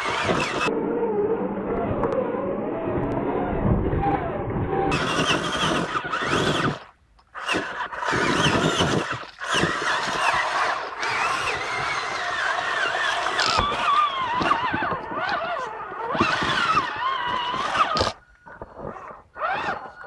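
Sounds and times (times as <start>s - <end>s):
electric motor whining: 0.0s - 20.0s.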